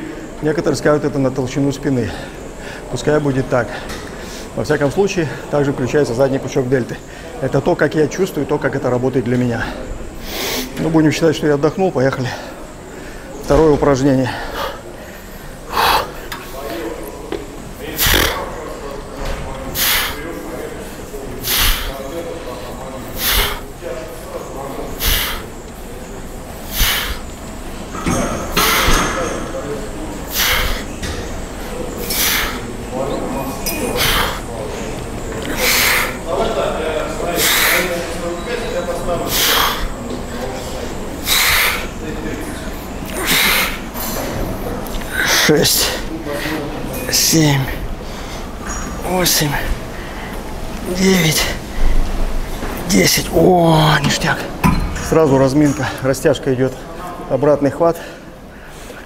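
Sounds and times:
man breathing forcefully: 14.3s - 16.3s, 19.7s - 20.2s, 21.4s - 22.0s, 23.1s - 23.8s, 24.9s - 25.6s, 26.6s - 27.4s, 28.5s - 29.0s, 30.3s - 32.8s, 33.8s - 34.5s, 35.5s - 36.3s, 37.4s - 38.0s, 39.3s - 40.0s, 41.2s - 42.0s, 42.8s - 44.1s
man exhaling forcefully: 21.4s - 21.9s, 23.2s - 23.6s, 25.0s - 25.5s, 26.7s - 27.2s, 30.3s - 30.9s, 32.0s - 32.6s, 41.2s - 41.9s, 43.2s - 43.8s.

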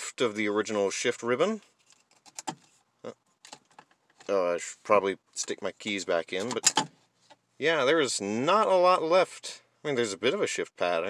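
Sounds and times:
light clicks and rustles: 1.6s - 4.3s.

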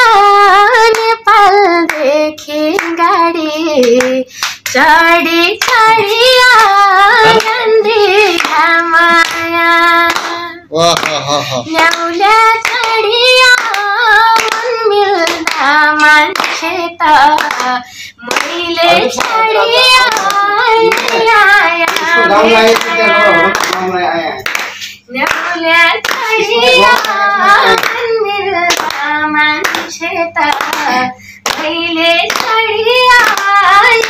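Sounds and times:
woman singing: 0.0s - 10.7s, 11.6s - 23.8s, 25.1s - 34.0s.

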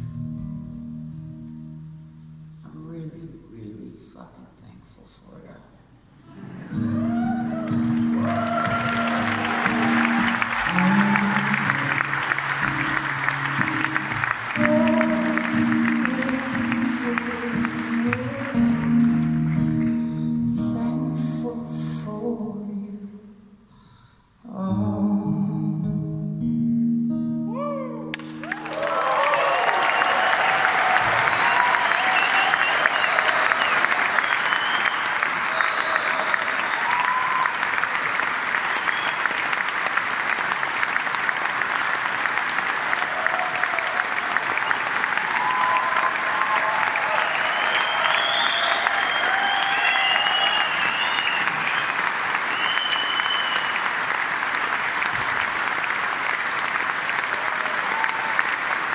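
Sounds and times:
acoustic guitar: 0.0s - 3.5s, 6.2s - 28.7s
audience applauding and cheering: 6.3s - 20.4s, 28.0s - 58.9s
shouts from audience: 7.0s - 11.5s, 27.5s - 38.0s, 42.8s - 52.0s, 57.2s - 58.7s.

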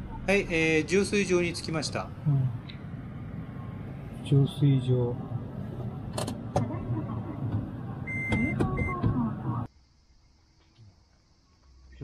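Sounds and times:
low car engine hum: 0.0s - 9.7s
short electronic beeps: 8.1s - 9.0s.

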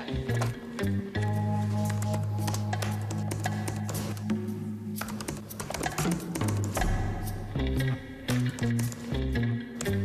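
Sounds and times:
background music: 0.0s - 10.0s
typing on laptop keyboard: 5.0s - 6.8s.

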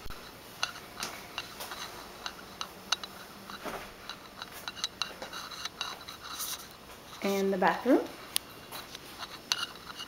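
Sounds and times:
handling noise on camera: 0.0s - 7.5s, 8.3s - 10.0s
footsteps: 0.0s - 10.0s.

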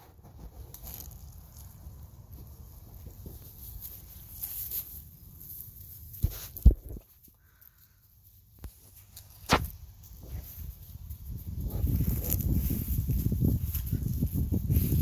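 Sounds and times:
pine straw rustling under paws: 0.0s - 15.0s.

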